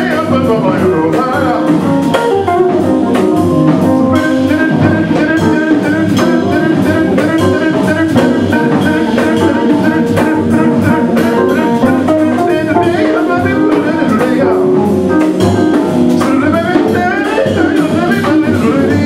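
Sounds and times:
drum-kit beat: 0.0s - 19.0s
jazz band playing: 0.0s - 19.0s.

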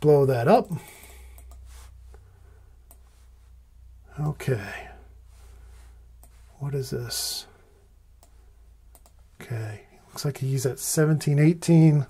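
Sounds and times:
electrical hum: 0.0s - 12.0s
faint short clicks: 8.2s - 9.2s.

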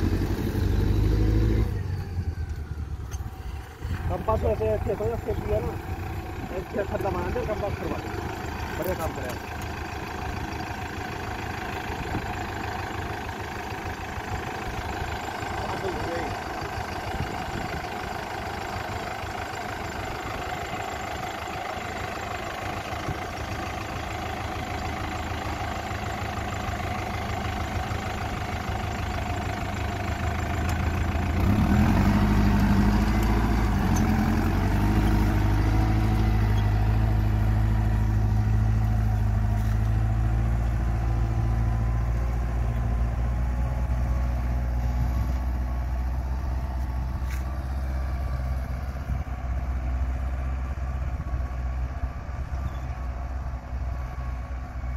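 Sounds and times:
tractor diesel engine running: 0.0s - 54.9s.

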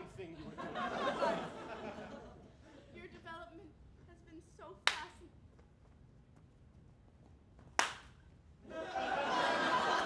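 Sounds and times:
sharp hand claps: 4.8s - 5.2s, 7.7s - 8.2s.

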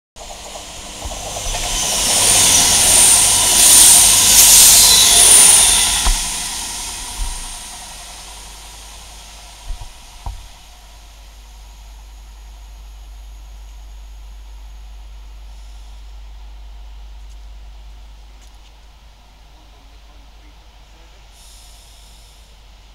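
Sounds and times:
faint steady rumble: 0.2s - 22.9s
train passing at speed: 0.2s - 22.9s.

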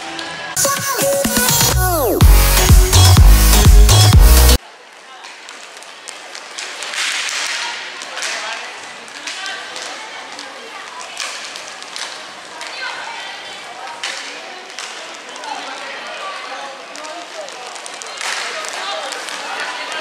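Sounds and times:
players and spectators voices: 0.0s - 20.0s
hockey sticks and puck clacking: 5.2s - 20.0s.

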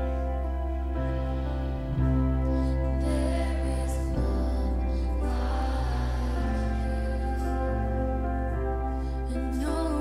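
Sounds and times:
keyboard chords: 0.0s - 10.0s
steady bass: 0.0s - 10.0s
person singing: 1.4s - 10.0s.

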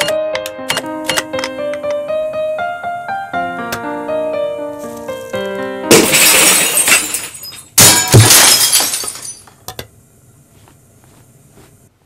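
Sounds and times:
glass shattering: 5.9s - 9.6s
falling glass pieces: 5.9s - 9.8s.

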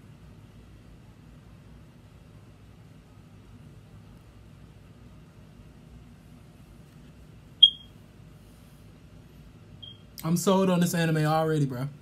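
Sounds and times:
faint room hum: 0.0s - 12.0s
short high-pitched beep: 7.6s - 7.9s, 9.8s - 10.0s.

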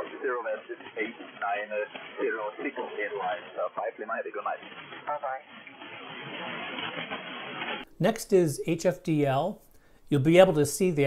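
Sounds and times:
man's voice over radio: 0.0s - 5.5s
radio static hiss: 0.0s - 8.8s.

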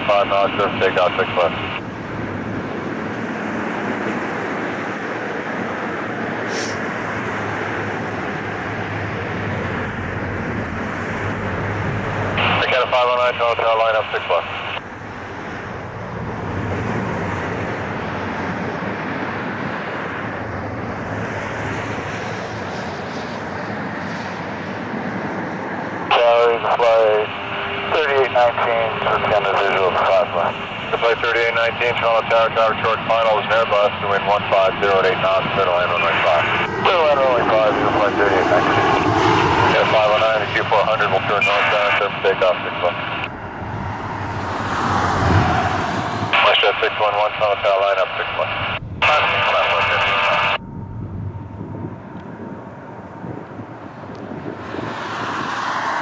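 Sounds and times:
jet airliner engines rumbling: 0.0s - 56.0s
car passing close by: 43.3s - 46.4s, 51.8s - 56.0s.

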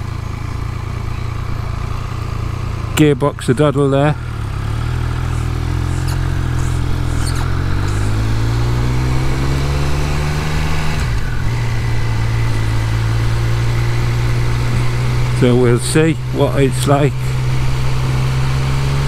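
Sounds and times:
motorcycle engine pulling: 1.2s - 19.0s.

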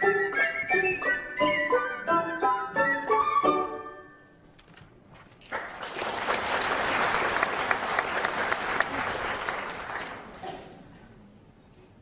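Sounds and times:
audience applauding: 5.4s - 10.4s.

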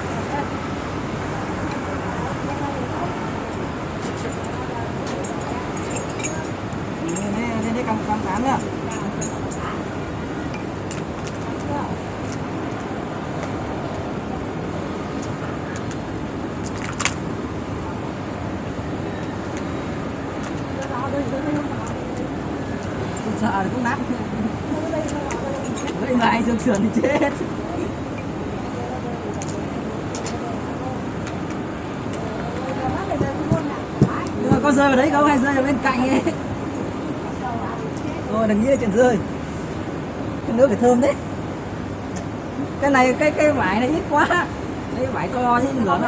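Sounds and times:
faint distant voices: 0.0s - 10.8s, 17.4s - 39.2s
outdoor background noise: 0.0s - 46.0s.

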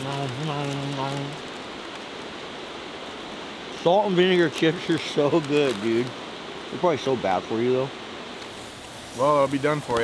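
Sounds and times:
river rushing: 0.0s - 10.0s.

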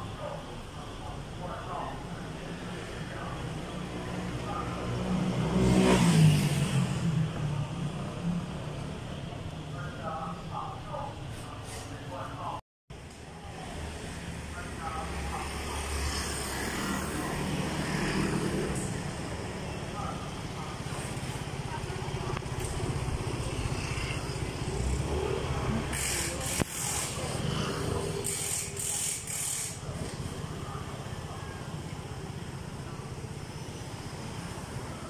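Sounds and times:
steady traffic noise: 0.0s - 35.0s
motor scooters passing: 2.2s - 9.4s, 13.5s - 35.0s.

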